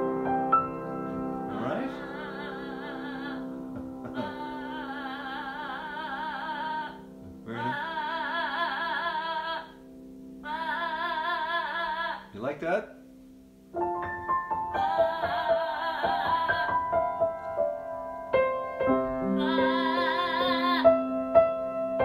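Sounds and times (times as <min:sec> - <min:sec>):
sustained keyboard chords: 0:00.0 - 0:08.6, 0:12.3 - 0:22.0
person singing slow song: 0:00.6 - 0:12.4, 0:14.6 - 0:17.5, 0:19.2 - 0:21.4.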